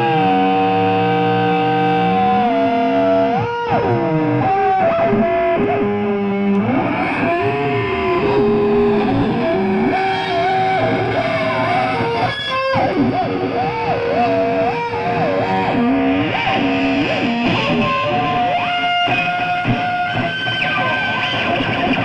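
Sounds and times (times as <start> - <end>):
distorted electric guitar bending notes: 0.0 - 22.0.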